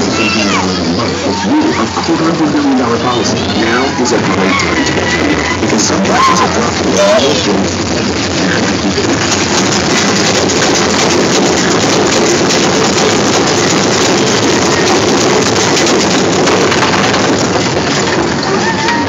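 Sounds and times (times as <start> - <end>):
roller coaster cars rumbling: 0.0 - 19.0.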